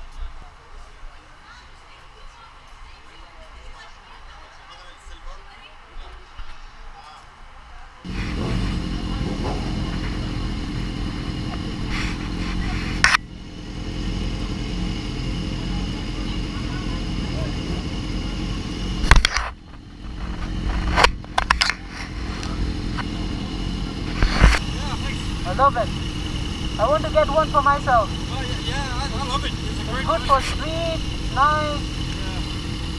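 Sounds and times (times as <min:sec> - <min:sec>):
motorcycle engine idling: 0:08.1 - 0:32.9.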